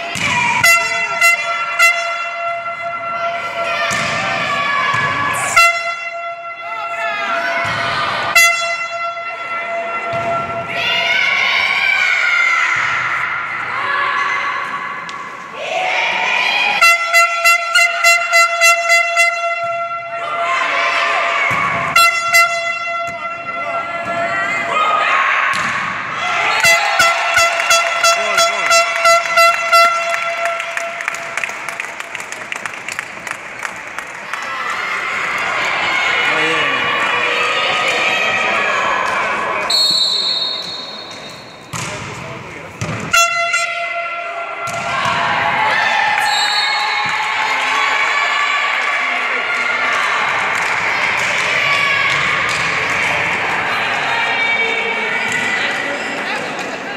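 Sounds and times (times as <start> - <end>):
crowd shouting and cheering: 0.0 - 56.9
air horn blasts: 0.5 - 3.2, 5.4 - 6.7, 8.3 - 9.5, 16.8 - 20.2, 21.9 - 23.6, 26.6 - 31.0, 43.1 - 44.4
high whistle blast: 39.7 - 41.7, 46.2 - 47.0.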